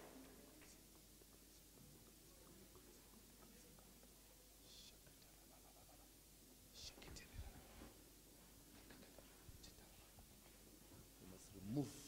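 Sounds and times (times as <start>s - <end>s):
faint whisper: 0.0s - 12.0s.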